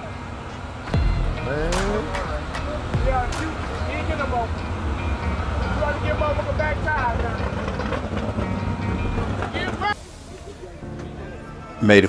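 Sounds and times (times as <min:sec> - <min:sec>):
low steady rumble: 0:00.7 - 0:07.8.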